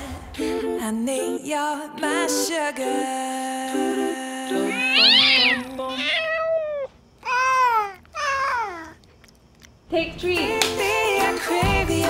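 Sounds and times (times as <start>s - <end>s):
cat meowing: 4.7s - 9.0s.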